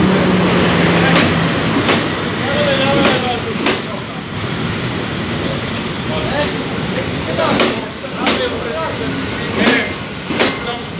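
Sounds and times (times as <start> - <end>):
train wheels on rails: 0.0 - 10.9.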